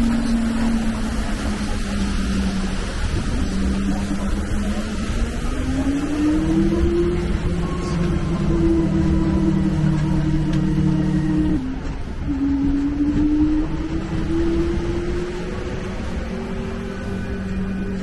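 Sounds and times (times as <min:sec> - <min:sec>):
engine rumbling under load: 0:00.0 - 0:18.0.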